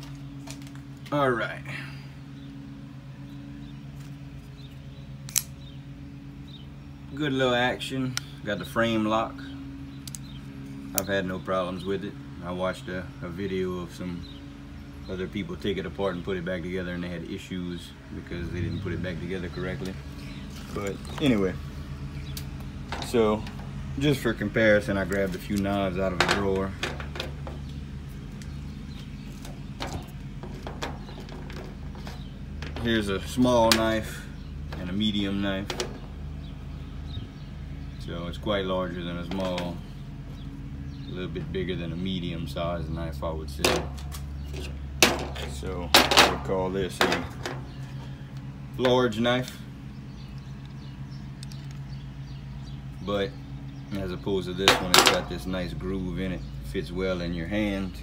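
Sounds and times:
steady low hum: 0.0s - 58.0s
folding knife blade clicking open: 5.3s - 5.5s.

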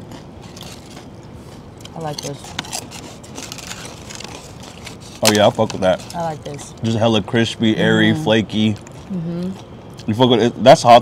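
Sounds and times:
crunching of chewed fried chicken: 0.0s - 10.3s
steady background noise: 0.0s - 11.0s.

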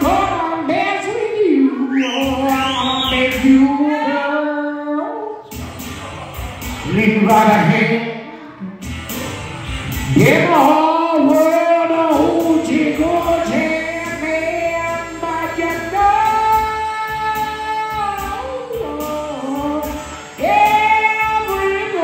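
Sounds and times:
electric blues band playing: 0.0s - 3.9s, 5.5s - 22.0s.

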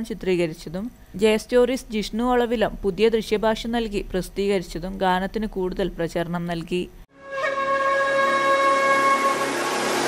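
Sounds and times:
held wind instrument note: 7.1s - 10.0s.

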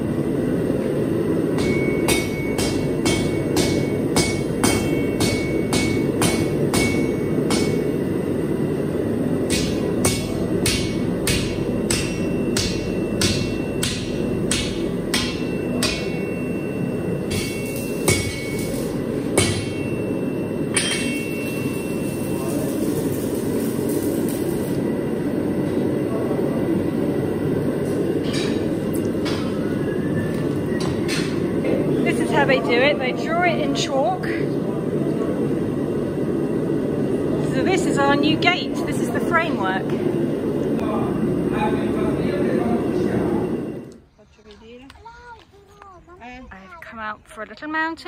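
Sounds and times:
hammer ringing on anvil: 1.6s - 8.0s, 9.5s - 23.3s.

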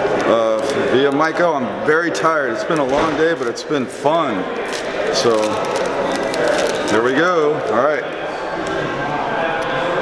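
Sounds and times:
indoor hubbub: 0.0s - 10.0s.

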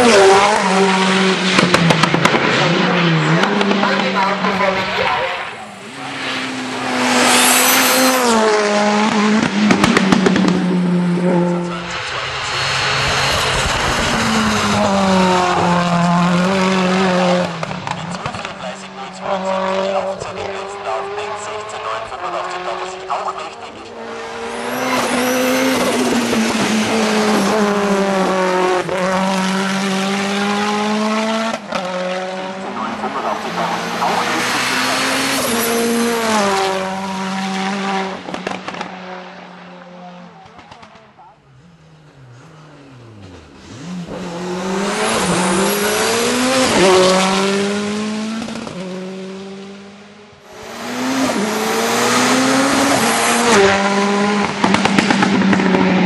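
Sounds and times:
rally car engine revving past: 0.0s - 41.0s, 41.6s - 56.0s.

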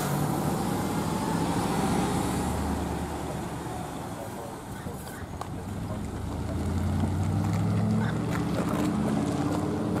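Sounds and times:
truck engine pulling away: 0.0s - 4.6s, 5.6s - 10.0s.

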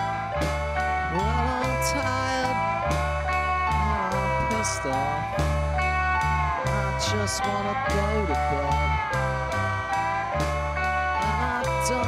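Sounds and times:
deep bass line: 0.0s - 12.0s
sliding guitar notes: 0.0s - 12.0s.

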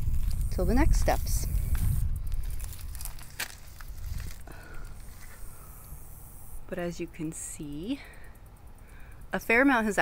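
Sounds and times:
dry brush and leaves crackling: 0.0s - 5.6s.

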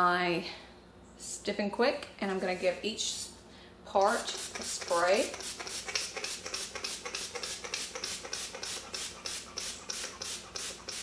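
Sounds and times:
spray bottle spritzing: 4.0s - 11.0s.

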